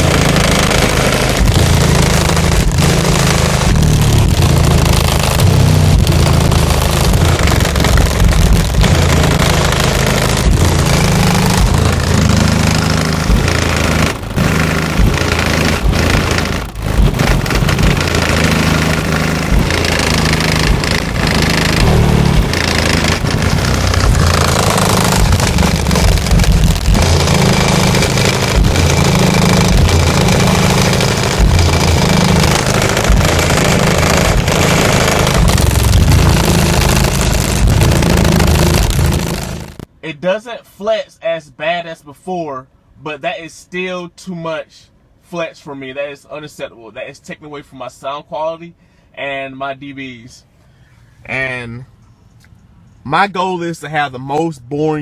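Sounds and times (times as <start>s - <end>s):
harsh rattling buzz: 0.0s - 39.9s
deep pulsing bass music: 0.0s - 40.0s.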